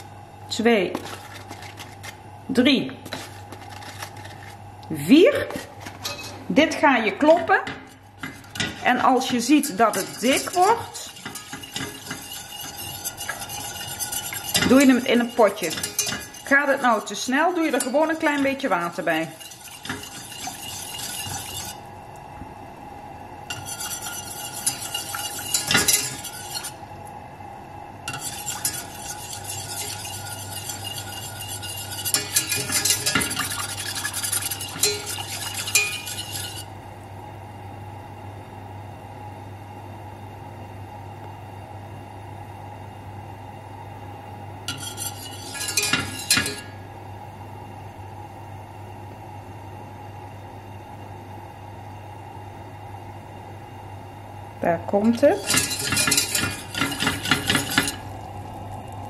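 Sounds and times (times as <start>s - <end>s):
steady low hum: 0.0s - 59.0s
whisk scraping a metal pan: 7.2s - 21.8s, 23.5s - 26.8s, 28.1s - 36.7s, 44.7s - 46.7s, 55.1s - 58.1s.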